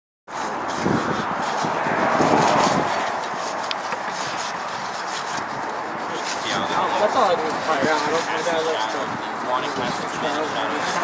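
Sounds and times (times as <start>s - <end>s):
outdoor noise: 0.3s - 11.0s
trowel scraping wet concrete: 0.3s - 11.0s
faint voices: 0.4s - 11.0s.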